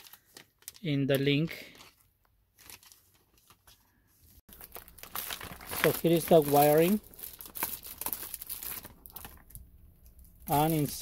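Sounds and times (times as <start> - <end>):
plastic bag crinkling: 0.0 - 2.0, 4.5 - 11.0.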